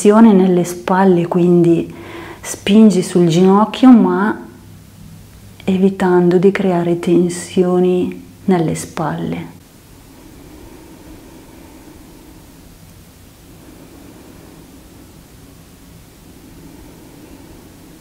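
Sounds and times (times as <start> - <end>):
low hiss of room tone: 0.0 - 18.0.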